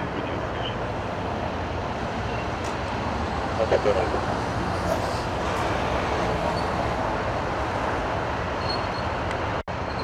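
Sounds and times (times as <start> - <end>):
low rumble of freeway traffic: 0.0 - 10.0.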